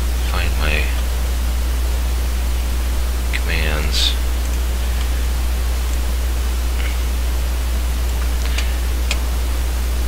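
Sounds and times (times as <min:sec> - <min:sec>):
microphone line hum and hiss: 0:00.0 - 0:10.0.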